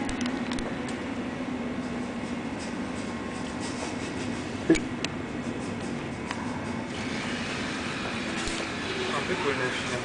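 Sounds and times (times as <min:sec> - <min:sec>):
rumbling room noise: 0:00.0 - 0:10.0.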